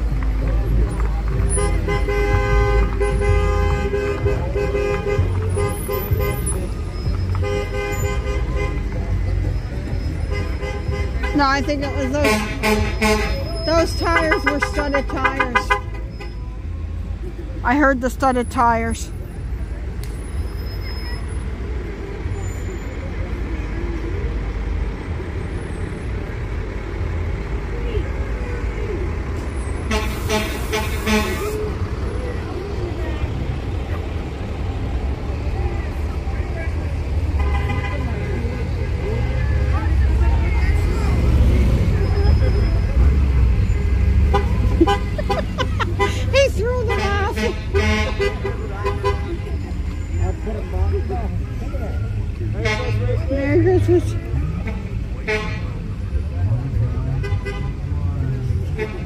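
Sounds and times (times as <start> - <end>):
crowd voices and shouts: 0.0 - 59.0
vehicle engines rumbling: 0.0 - 59.0
horn tooting: 1.3 - 16.7, 29.4 - 32.4, 37.2 - 51.5, 52.4 - 56.0, 56.7 - 59.0.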